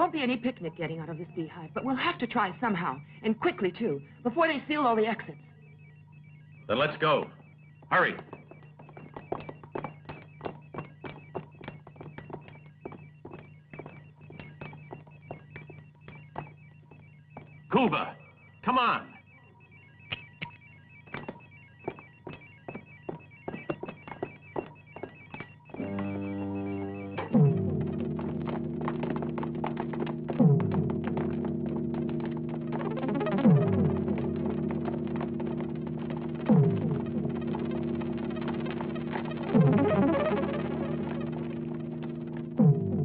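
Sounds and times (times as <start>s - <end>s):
synthesizer music swooping tones: 19.2s - 43.0s
knocks and clatter: 21.1s - 26.1s, 27.2s - 39.8s.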